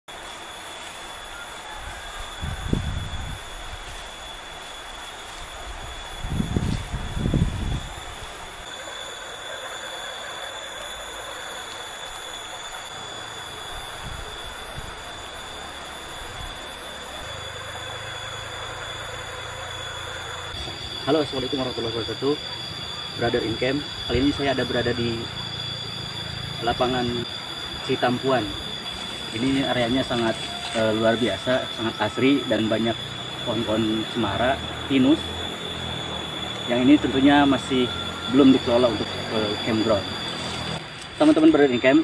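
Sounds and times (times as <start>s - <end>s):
high-pitched insect drone: 0.1s - 42.0s
wind gusts on microphone: 1.8s - 4.1s, 5.4s - 8.5s.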